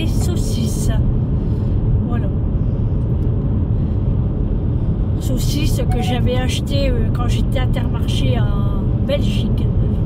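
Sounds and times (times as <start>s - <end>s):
car rumble from inside cabin: 0.0s - 10.0s.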